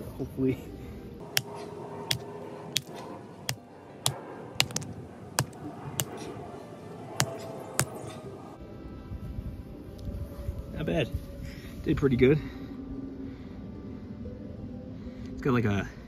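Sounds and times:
knife pommel knocking on slate: 0:04.6 - 0:04.8.

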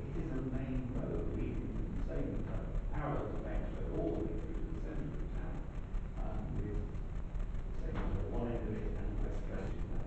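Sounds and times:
muffled indistinct speech: 0:00.0 - 0:10.0
steady low rumble: 0:00.0 - 0:10.0.

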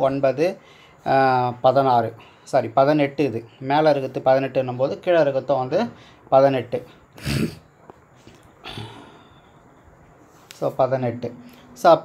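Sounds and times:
man breathing close to microphone: 0:00.6 - 0:01.1, 0:06.0 - 0:06.3, 0:08.6 - 0:10.5.

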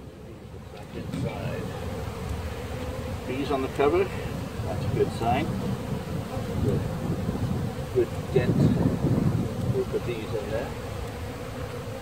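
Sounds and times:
honeybees buzzing: 0:00.0 - 0:12.0.

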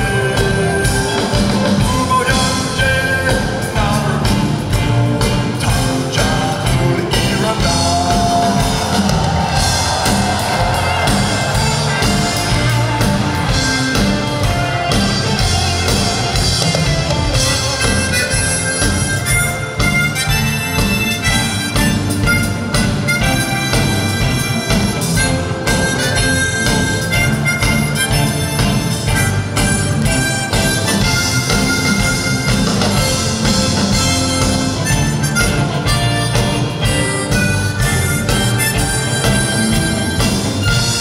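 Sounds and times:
amplified harmonica melody: 0:00.0 - 0:41.0
live band with drum beat: 0:00.0 - 0:41.0.

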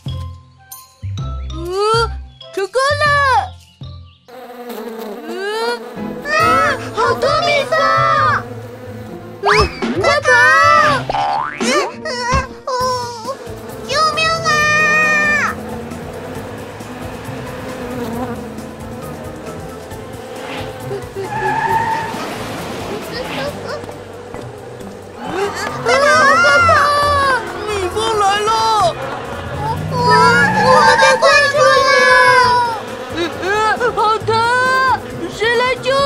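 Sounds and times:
swarm of bees buzzing: 0:04.3 - 0:11.6, 0:13.0 - 0:36.0
cartoon voice exclamation: 0:05.3 - 0:08.4, 0:09.4 - 0:11.2, 0:12.0 - 0:15.6, 0:25.3 - 0:28.7, 0:29.6 - 0:32.8
cartoon car speeding away: 0:06.0 - 0:11.6, 0:13.0 - 0:36.0
tyre skid: 0:13.8 - 0:36.0.

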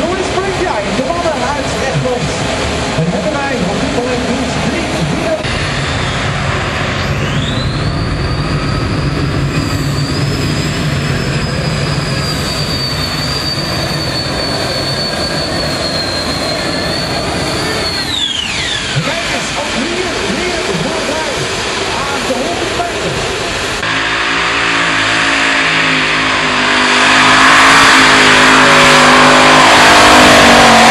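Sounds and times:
tractor engine at full power: 0:00.0 - 0:30.9.

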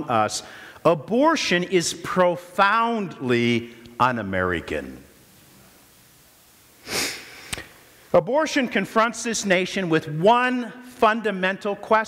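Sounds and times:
man's sharp intake of breath: 0:00.4 - 0:00.8, 0:06.8 - 0:07.7.

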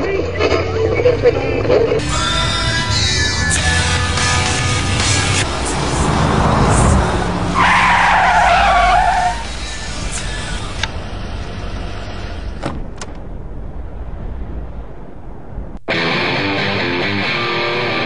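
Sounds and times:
car engine revving: 0:00.0 - 0:18.0
tyres squealing: 0:04.4 - 0:10.8.

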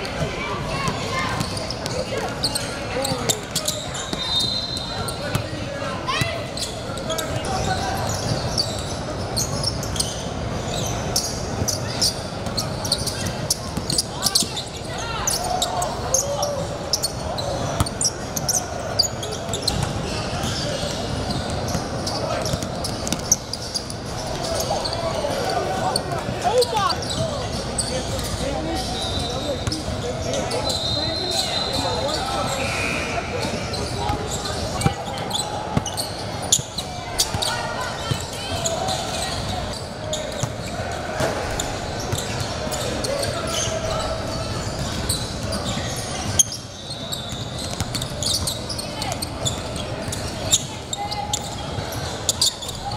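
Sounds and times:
echoing voices in gym: 0:00.0 - 0:52.9.

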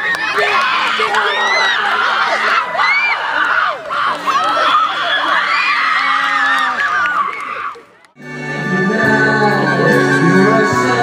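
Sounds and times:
children shouting and cheering: 0:00.0 - 0:08.0.

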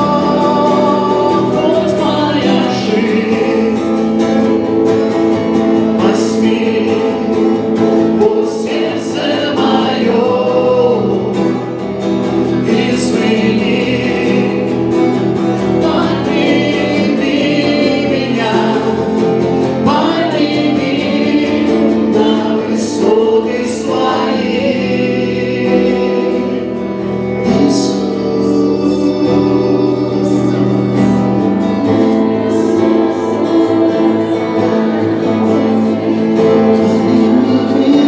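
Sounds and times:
acoustic guitar: 0:00.0 - 0:38.0
voices singing along: 0:00.0 - 0:38.0.

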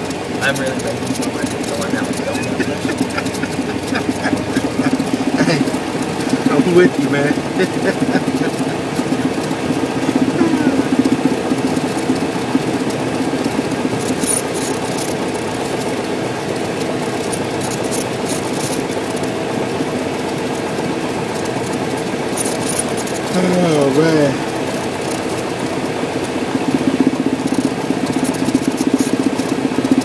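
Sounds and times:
aircraft piston engine running: 0:00.0 - 0:30.0.

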